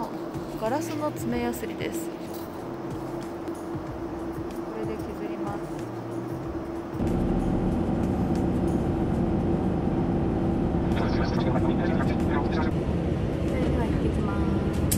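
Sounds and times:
airliner cabin drone: 0.0s - 14.9s.

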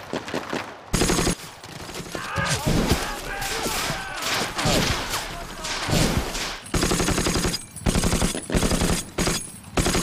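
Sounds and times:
machine gun firing bursts: 1.0s - 1.4s, 5.9s - 10.0s.

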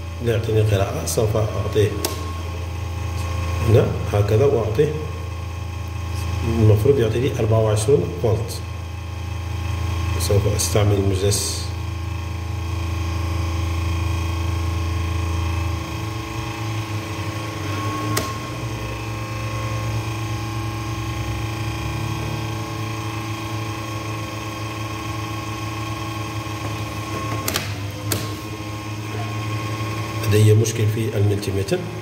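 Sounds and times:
computer power supply fan humming: 0.0s - 32.0s.

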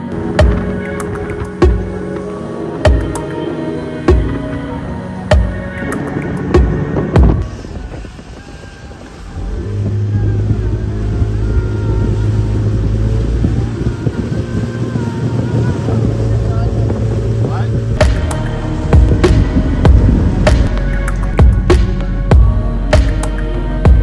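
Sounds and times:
rushing water: 0.0s - 24.0s
speedboat engine running: 0.0s - 24.0s
wind: 0.0s - 24.0s
music with a beat: 0.3s - 7.4s, 18.0s - 24.0s.

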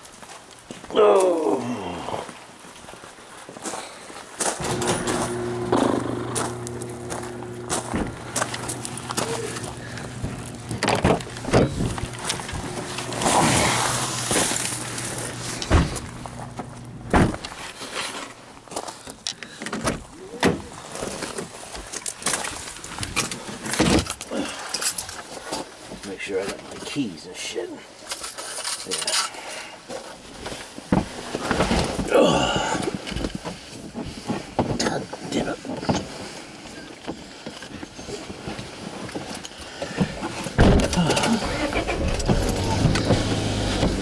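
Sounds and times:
footsteps on gravel: 2.3s - 19.0s
handling noises: 4.5s - 26.0s, 37.1s - 44.0s
car door shutting: 4.6s - 17.6s, 40.5s - 44.0s
steady low hum: 4.6s - 17.6s, 40.6s - 44.0s
knocks and clicks climbing into car: 10.2s - 13.2s, 40.0s - 44.0s.

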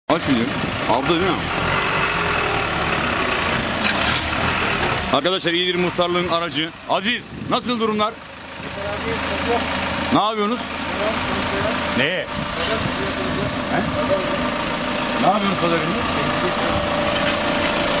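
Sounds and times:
truck engine driving past: 0.2s - 18.0s.

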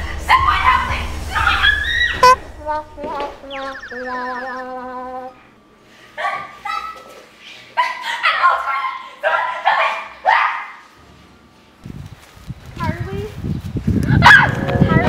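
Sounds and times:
rough low rumble: 0.0s - 5.5s, 11.8s - 15.0s.

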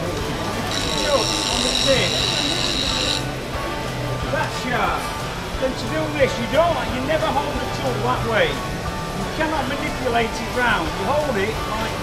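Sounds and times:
bench grinder whine: 0.4s - 3.4s.

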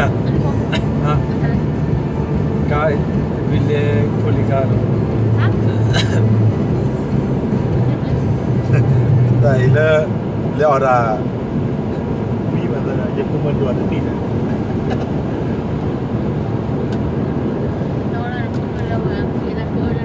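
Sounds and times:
car engine and road drone: 0.0s - 20.0s.

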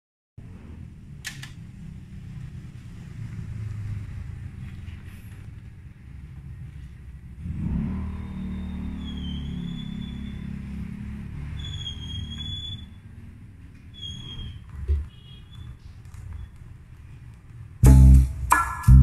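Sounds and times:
music from vinyl record: 17.8s - 19.0s.

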